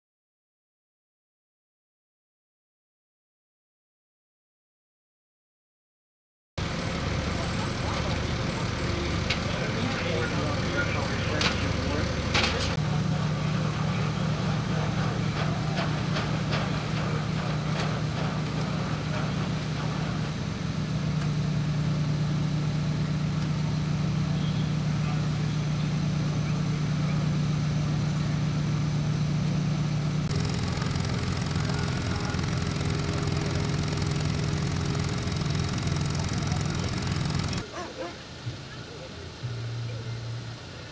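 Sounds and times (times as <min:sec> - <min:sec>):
diesel engines idling: 0:06.6 - 0:40.9
indistinct voices: 0:06.7 - 0:20.2.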